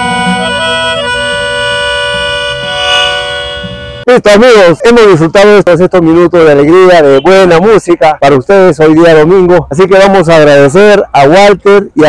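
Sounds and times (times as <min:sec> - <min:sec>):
melodica sustained chord: 0:00.0 - 0:04.1.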